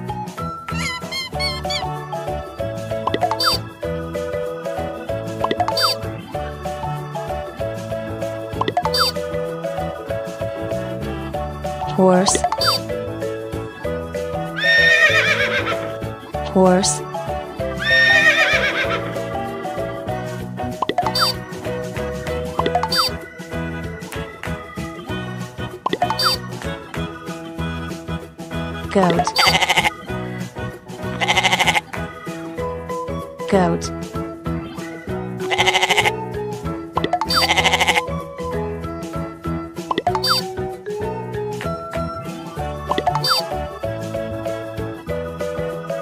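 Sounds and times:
children's music: 0.0 - 46.0
horse whinnying: 0.7 - 1.9, 14.6 - 15.9, 17.8 - 19.3, 37.3 - 38.1
goat bleating: 29.3 - 30.0, 31.2 - 31.9, 35.5 - 36.1, 37.3 - 38.1.

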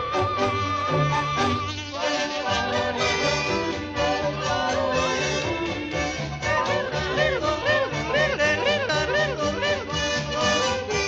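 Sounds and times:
bouncy band accompaniment: 0.0 - 11.0
comic yodeling: 0.0 - 11.0.

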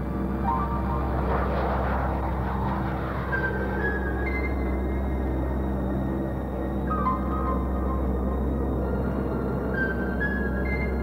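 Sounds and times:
jet engine at takeoff: 0.0 - 10.8
low background music: 0.0 - 11.0.

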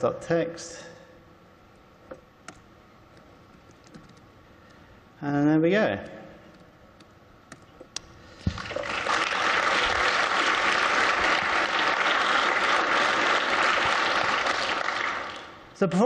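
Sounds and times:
audience applauding: 8.5 - 15.6.

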